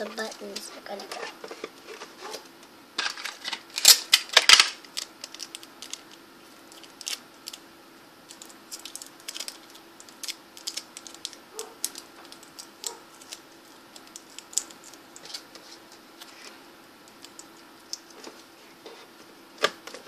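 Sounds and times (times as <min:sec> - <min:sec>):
craft materials rustling and crinkling: 0:00.0 - 0:07.6, 0:08.3 - 0:20.0.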